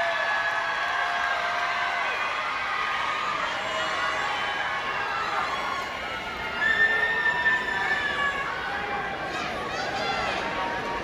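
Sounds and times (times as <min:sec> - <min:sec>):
audience cheering: 0:00.0 - 0:11.0
high-pitched scream: 0:03.4 - 0:09.0.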